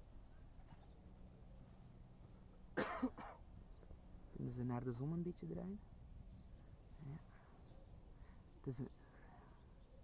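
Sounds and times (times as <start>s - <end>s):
man coughing: 2.8s - 3.4s.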